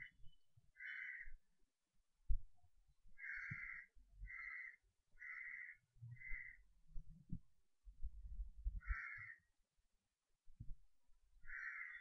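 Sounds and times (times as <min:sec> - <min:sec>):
bird harsh calls: 0:00.8 - 0:01.3, 0:03.2 - 0:06.6, 0:08.8 - 0:09.4, 0:11.5 - 0:12.0
faint low knocks and rumbles: 0:06.8 - 0:09.0.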